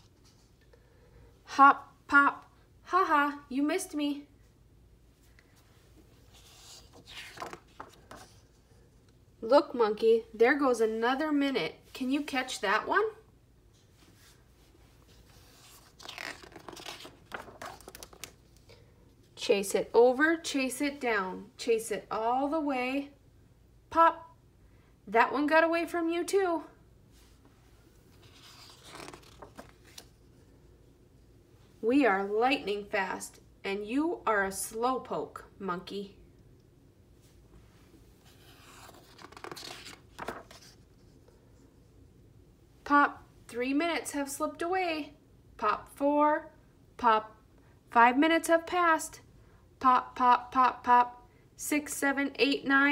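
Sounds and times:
paper page rustling: 6.2s - 8.6s, 15.1s - 18.6s, 28.1s - 30.2s, 38.2s - 41.4s.

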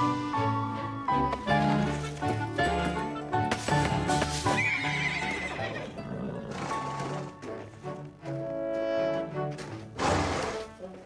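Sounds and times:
background music with held notes: 0.0s - 11.0s
horse whinnying: 4.4s - 7.4s.

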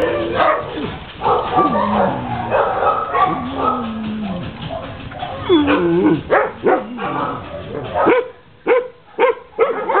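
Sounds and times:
dog barking: 0.0s - 3.9s, 4.6s - 10.0s.

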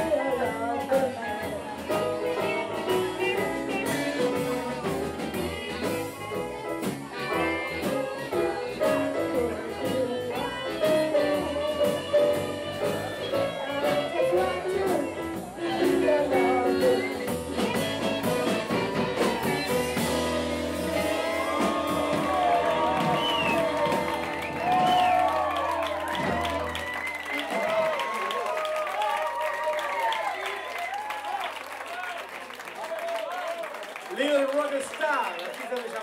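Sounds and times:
live blues band playing: 0.0s - 29.1s.

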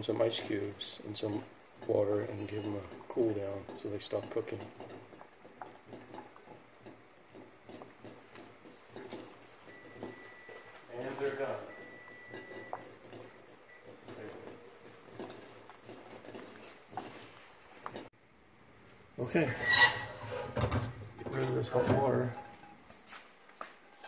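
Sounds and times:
water boiling in saucepan: 0.0s - 18.2s
faint high steady tone: 9.6s - 14.7s.

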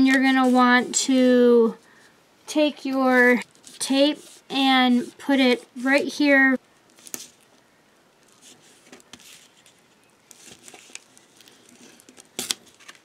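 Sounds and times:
paper rustling and scraping: 2.9s - 6.0s, 7.0s - 7.4s, 8.3s - 13.0s.

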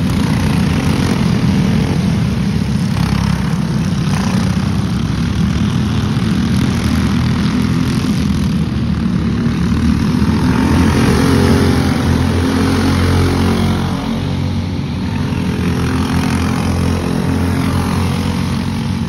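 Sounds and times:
go-kart engines buzzing: 0.0s - 19.0s.

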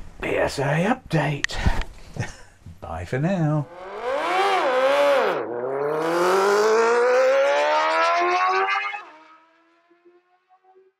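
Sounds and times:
engine revving: 3.6s - 10.9s.

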